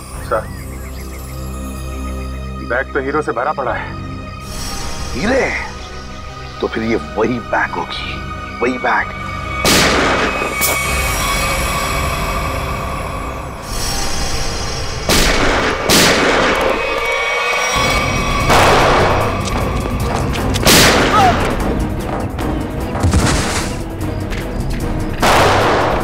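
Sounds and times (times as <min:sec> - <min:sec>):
dramatic background score: 0:00.0 - 0:26.0
pistol shots with echo: 0:25.2 - 0:26.0.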